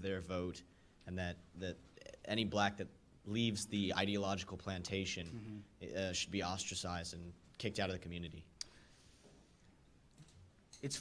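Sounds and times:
man speaking: 0.0 - 8.6, 10.8 - 11.0.

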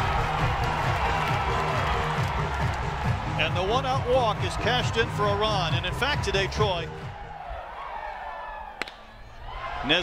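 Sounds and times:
bat cracking on ball: 8.8 - 9.1.

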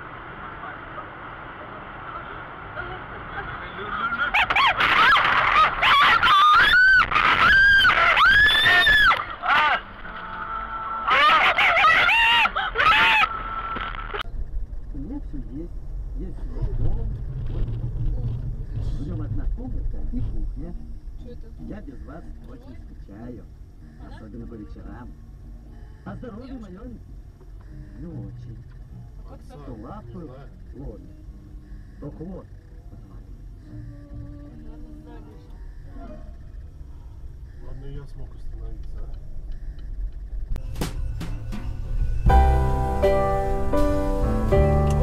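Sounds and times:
in-car road noise: 0.0 - 45.0
people crying out: 4.3 - 13.9.

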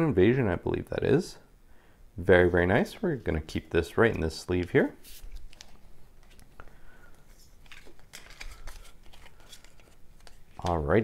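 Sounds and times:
trading cards rustling and clicking: 3.5 - 11.0.

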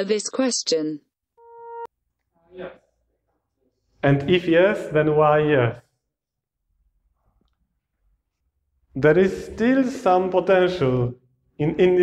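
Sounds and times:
electronic beep: 1.4 - 1.9.

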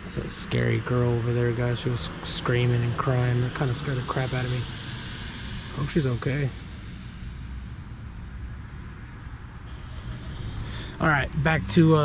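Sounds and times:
distant road traffic rumble: 0.0 - 12.0.

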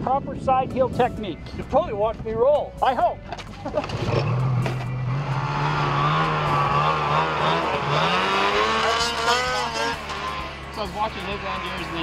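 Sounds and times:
snowmobile engine revving: 3.8 - 12.0.

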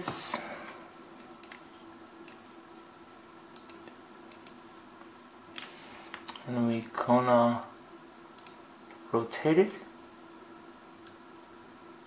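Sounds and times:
computer mouse clicks: 1.4 - 2.4, 3.5 - 4.6, 8.4 - 8.6.

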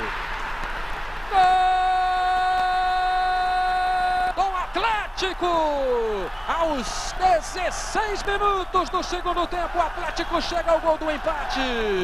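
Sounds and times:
stadium crowd roar: 0.0 - 12.0.

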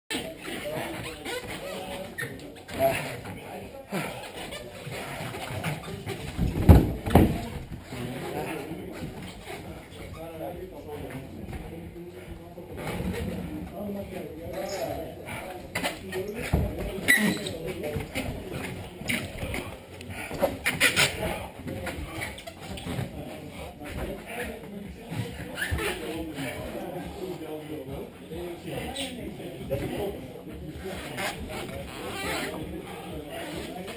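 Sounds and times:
heavy breathing and grunting: 2.6 - 6.4.

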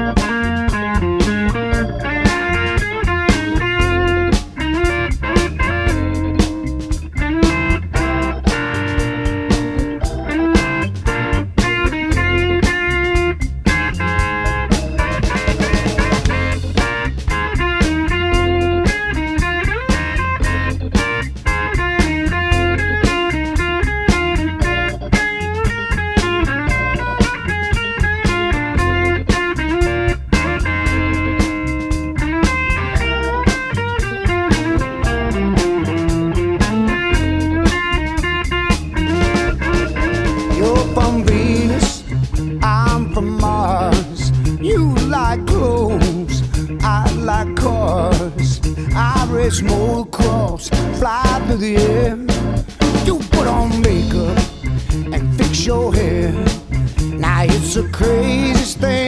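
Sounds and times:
drum kit beat: 0.0 - 59.0
electric guitar lead lines: 0.0 - 59.0.

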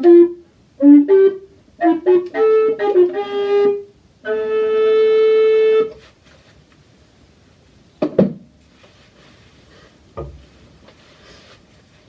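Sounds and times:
recorder holding steady note: 0.0 - 7.6.

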